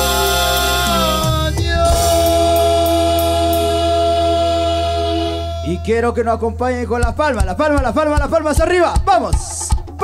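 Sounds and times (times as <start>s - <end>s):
man singing: 0.0s - 6.5s
live band music: 0.0s - 10.0s.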